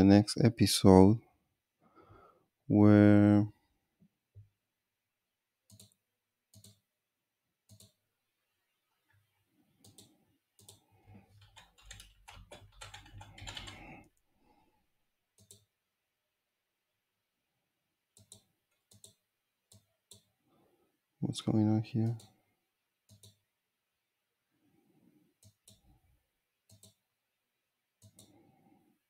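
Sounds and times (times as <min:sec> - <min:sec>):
typing on computer keyboard: 0:09.8 - 0:14.2, 0:15.3 - 0:15.7, 0:18.2 - 0:20.3, 0:23.1 - 0:23.4, 0:26.7 - 0:27.0.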